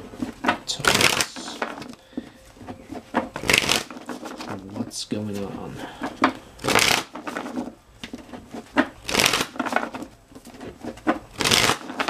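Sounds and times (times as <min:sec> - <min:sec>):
cards shuffling: 0:00.0 - 0:12.0.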